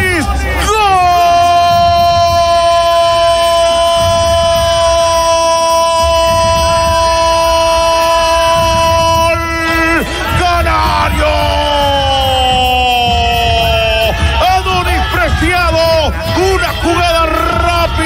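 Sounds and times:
commentator's long goal cry: 0.0 - 18.0.

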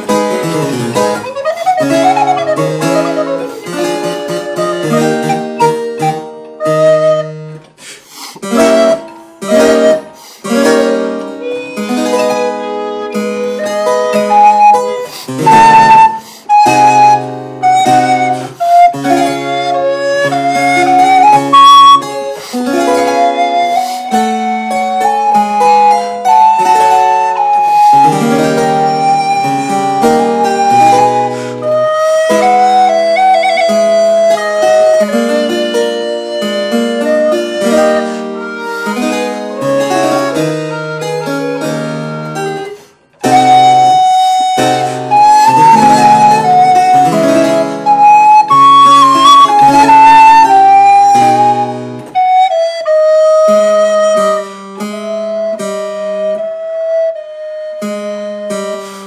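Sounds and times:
harpsichord: 0.0 - 56.1
recorder melody: 0.0 - 59.0.

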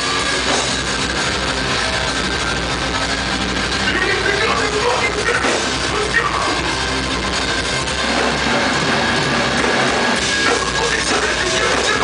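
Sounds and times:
distorted electric guitars: 0.0 - 12.0
hardcore band playing live: 0.0 - 12.0.

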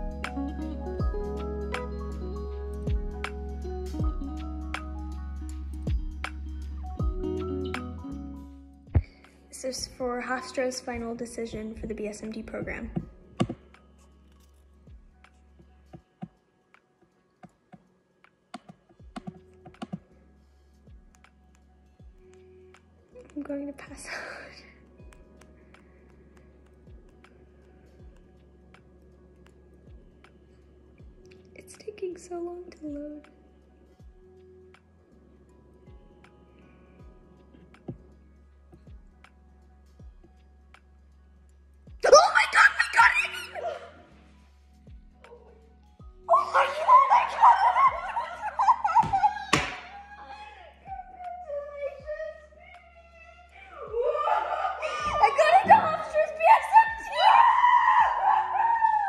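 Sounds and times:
woman squealing and whimpering: 42.0 - 44.1, 46.3 - 59.0.

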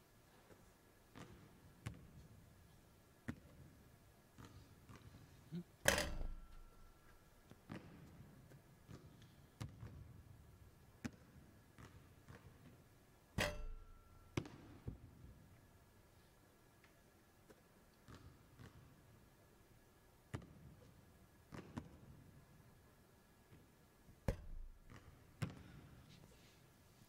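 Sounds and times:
basketball striking hard surfaces: 5.9 - 7.1, 13.4 - 15.0, 24.2 - 25.7.

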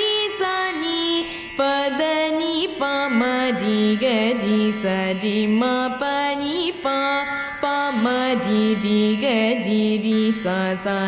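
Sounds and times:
girl singing with sliding notes: 0.0 - 11.0.

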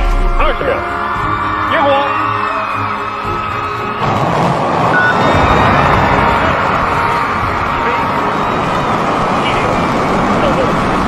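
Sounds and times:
rocket engine roar: 4.0 - 11.0.

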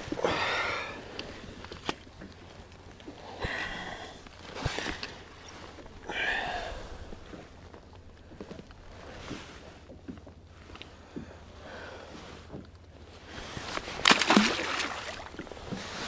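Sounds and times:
low wind rumble: 0.0 - 16.0
knocks and rustles of handling fish: 1.0 - 6.1, 6.9 - 16.0
splash in water: 14.0 - 15.4.

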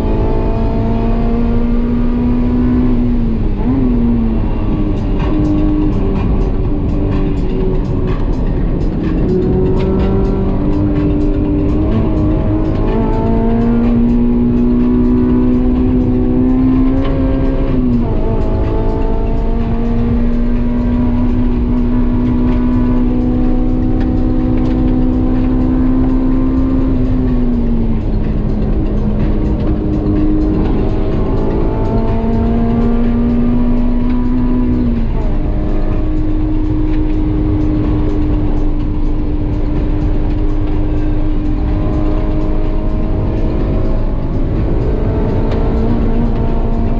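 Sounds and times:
car engine at high revs: 0.0 - 46.9
heavy wind: 0.0 - 46.9
road rumble: 0.0 - 46.9.

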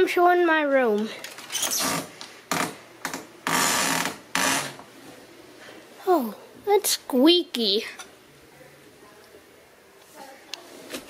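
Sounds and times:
door creaking on squeaky hinges: 1.4 - 4.8.

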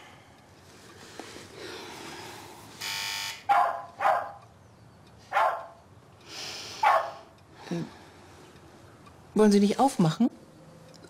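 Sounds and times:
electric doorbell buzzing: 2.8 - 3.5
dog barking: 3.5 - 4.4, 5.3 - 5.8, 6.8 - 7.3.

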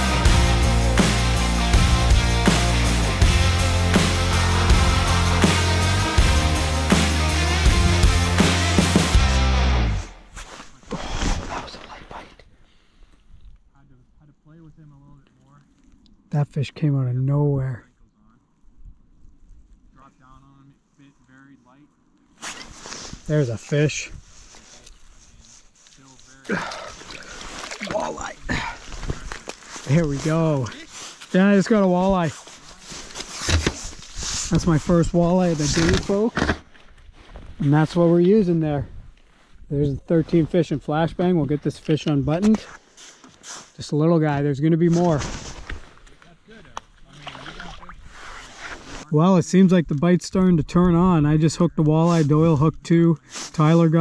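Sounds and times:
water sloshing in hole: 26.6 - 28.2, 47.0 - 48.2.

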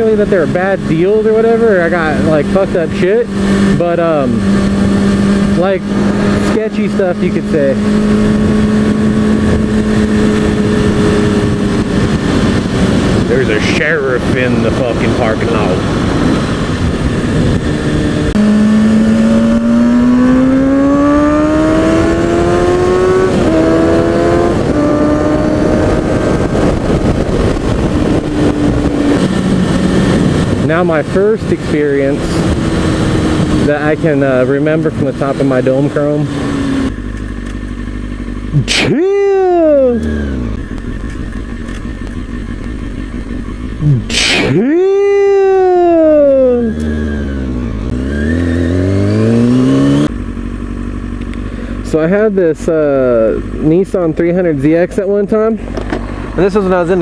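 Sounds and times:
wind noise: 0.0 - 37.0, 40.2 - 50.1
motorcycle engine accelerating: 0.0 - 57.0
motorcycle engine idling: 36.7 - 38.6, 40.0 - 43.8, 50.1 - 54.4.

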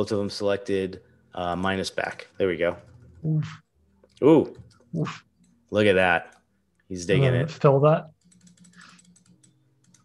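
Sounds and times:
computer keyboard clicks: 8.2 - 10.0.

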